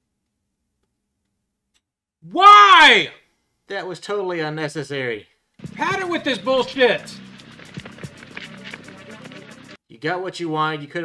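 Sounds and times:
background music: 0:05.6 - 0:09.8
running footsteps on pavement: 0:05.6 - 0:09.8.

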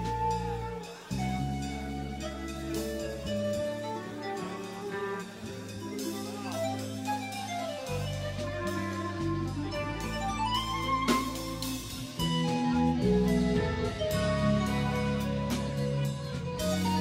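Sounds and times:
jazz-fusion band playing: 0:00.0 - 0:17.0.

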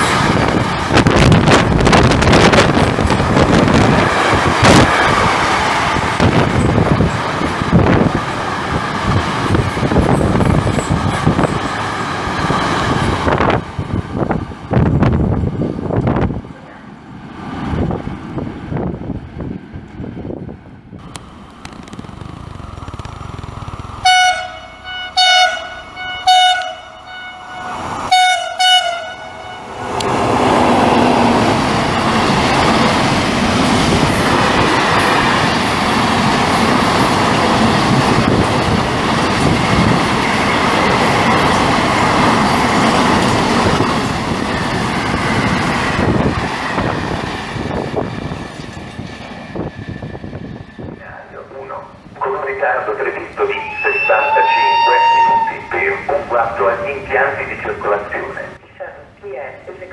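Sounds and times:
train wheels clattering on rails: 0:00.0 - 0:15.0, 0:21.0 - 0:24.1, 0:29.9 - 0:50.8
train horn blasts: 0:24.0 - 0:29.8, 0:53.6 - 0:55.6.

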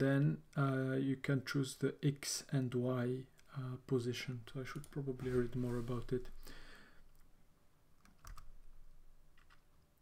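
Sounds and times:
computer keyboard key clicks: 0:08.0 - 0:08.5.

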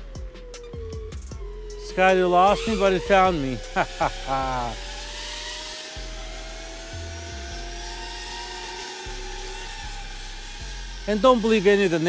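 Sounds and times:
electric motor whine: 0:00.0 - 0:12.0
lower motor whine: 0:00.0 - 0:12.0.

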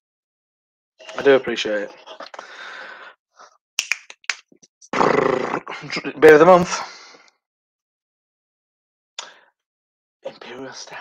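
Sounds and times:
gravelly growl vocal: 0:05.0 - 0:05.9.

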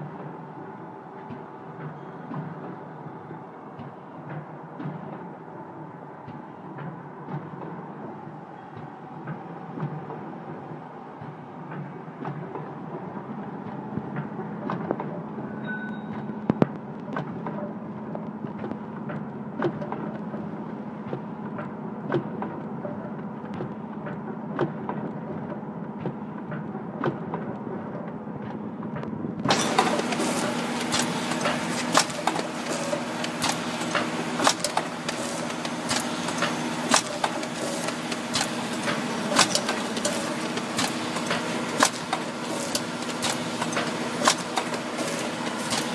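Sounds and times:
machine clicks and knocks: 0:03.8 - 0:15.4, 0:16.0 - 0:45.9
packing machine humming: 0:29.4 - 0:45.9.

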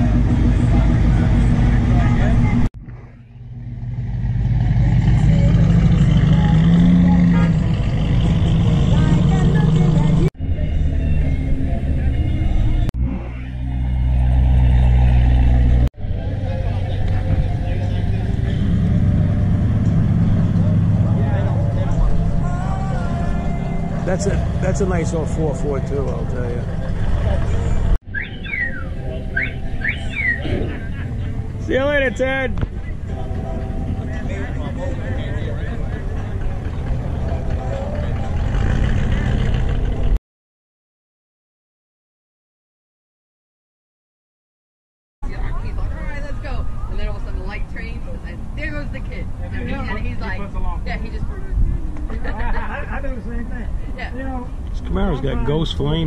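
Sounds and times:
people chatting: 0:00.0 - 0:02.7, 0:04.6 - 0:07.7, 0:08.8 - 0:11.0, 0:16.2 - 0:18.8, 0:20.6 - 0:27.7, 0:30.4 - 0:38.4, 0:45.2 - 0:56.0
car engine idling: 0:00.0 - 0:10.3
car engine and exhaust rumbling: 0:00.0 - 0:40.2, 0:45.3 - 0:56.0
background voices: 0:16.0 - 0:28.0.

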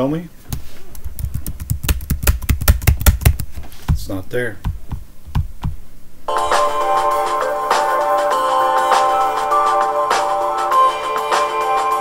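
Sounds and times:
keyboard keys clicking rapidly: 0:01.0 - 0:03.6.

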